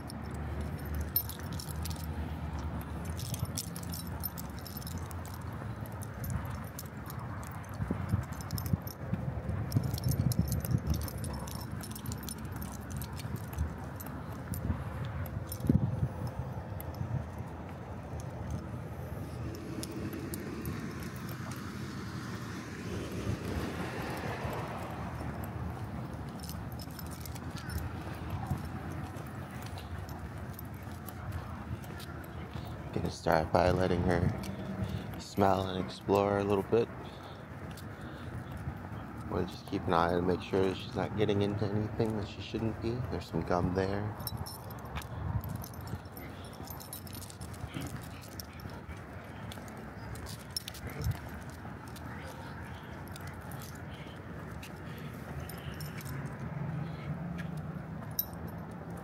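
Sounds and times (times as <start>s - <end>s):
leash hardware jingling: 0.0s - 59.0s.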